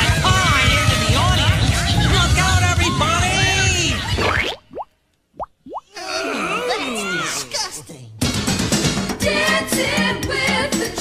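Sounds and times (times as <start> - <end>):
music: 0.0 - 4.2, 8.2 - 11.0
upward sweeping bloops: 4.2 - 5.9.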